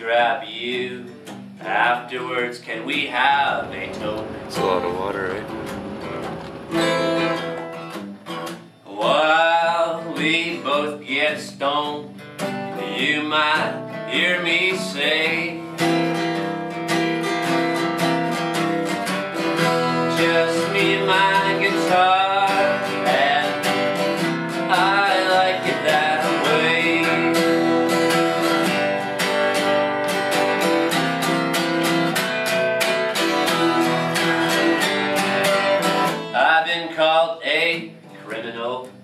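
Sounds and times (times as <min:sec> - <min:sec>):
acoustic guitar strumming: 0:00.0 - 0:39.0.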